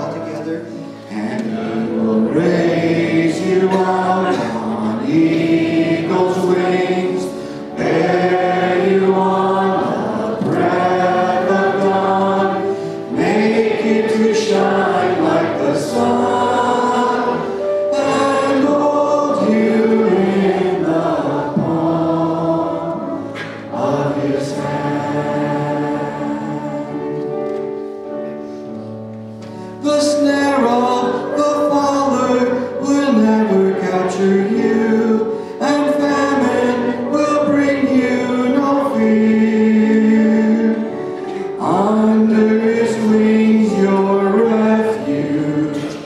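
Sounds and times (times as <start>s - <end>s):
congregation singing a hymn: 0.0s - 46.0s
man singing into a microphone: 0.6s - 5.4s, 29.8s - 46.0s.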